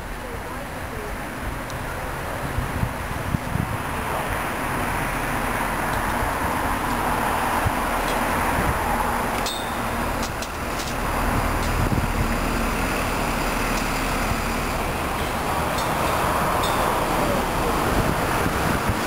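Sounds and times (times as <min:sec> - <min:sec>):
road traffic noise: 0:00.0 - 0:19.0.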